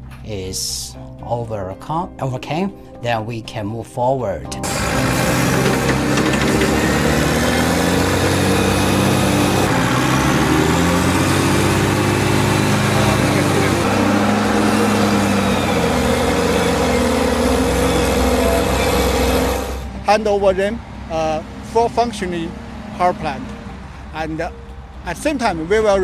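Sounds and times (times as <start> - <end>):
heavy diesel engines revving: 4.6 - 20.0.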